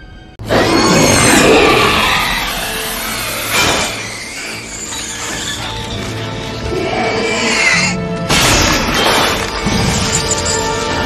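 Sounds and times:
soundtrack music: 0.0 - 11.0.

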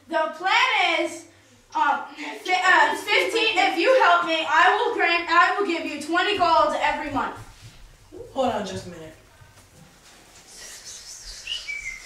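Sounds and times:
boys whispering: 10.4 - 12.0.

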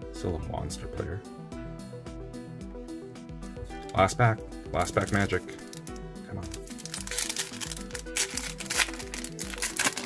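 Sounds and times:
background music: 0.0 - 10.0
foil pack crinkling and tearing: 4.8 - 10.0.

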